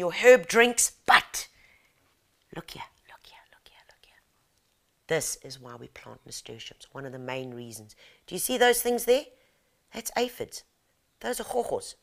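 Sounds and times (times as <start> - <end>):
faint whispered muttering: 2.7 - 4.4.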